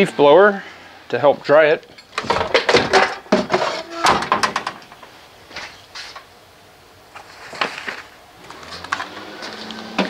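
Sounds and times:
knocks and clatters: 0:01.9 - 0:06.3.

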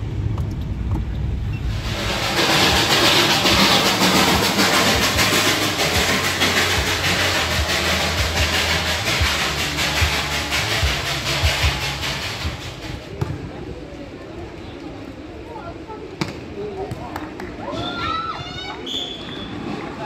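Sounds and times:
train coaches rolling past: 0:00.0 - 0:16.6, 0:17.4 - 0:20.0.

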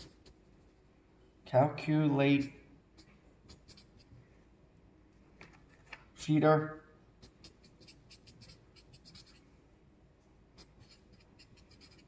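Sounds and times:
marker writing on paper: 0:00.0 - 0:00.9, 0:03.0 - 0:04.1, 0:07.2 - 0:09.4, 0:10.6 - 0:12.0.

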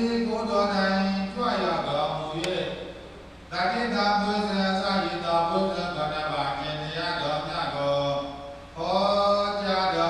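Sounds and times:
man chanting into microphone: 0:03.5 - 0:10.0.

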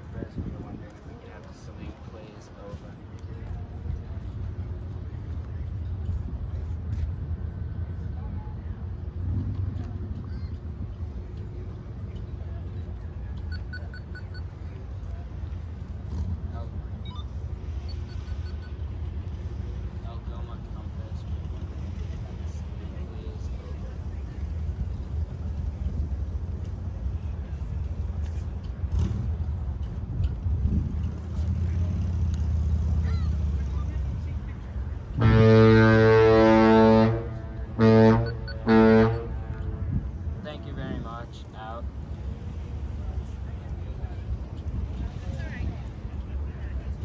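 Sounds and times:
faint voices: 0:00.0 - 0:47.0
ship's horn blasts: 0:35.0 - 0:41.0.

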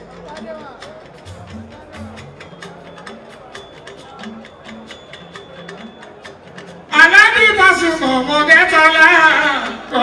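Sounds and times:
clicking percussion: 0:00.0 - 0:06.9.

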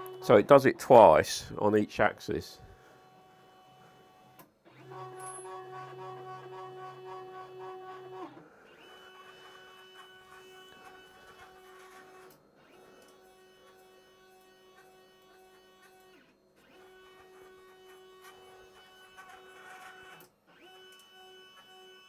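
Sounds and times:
stepper motors whining: 0:04.7 - 0:22.0.

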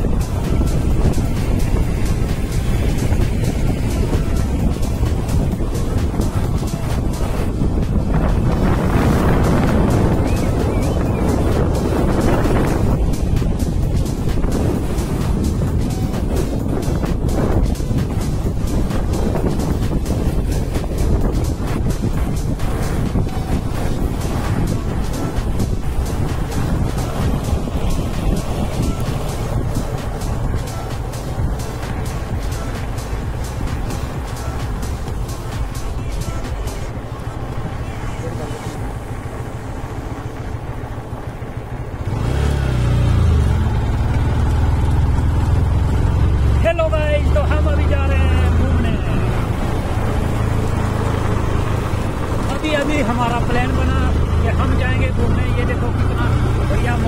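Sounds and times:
motorbike road noise: 0:00.0 - 0:57.0
music: 0:00.0 - 0:57.0
wind buffeting microphone: 0:00.0 - 0:57.0.

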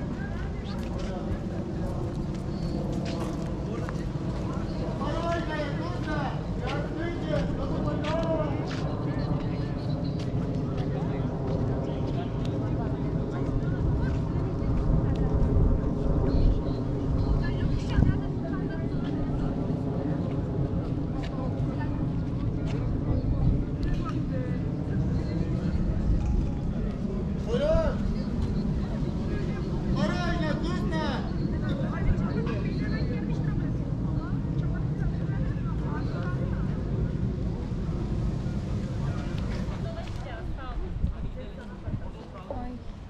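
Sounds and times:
low traffic rumble: 0:00.0 - 0:43.0
people's voices passing: 0:00.0 - 0:43.0.

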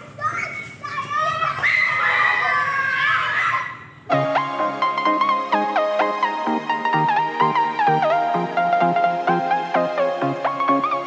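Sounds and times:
children shouting: 0:00.0 - 0:04.0.

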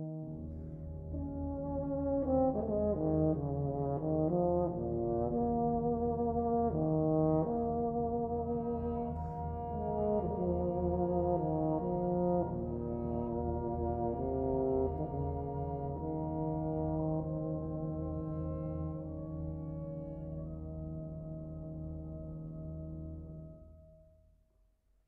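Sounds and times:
brass band playing: 0:01.5 - 0:07.6, 0:09.6 - 0:18.7.

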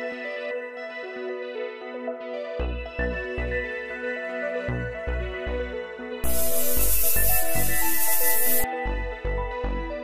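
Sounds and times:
background music with steady beat: 0:00.0 - 0:10.0
perfume spray hissing: 0:06.2 - 0:08.7.

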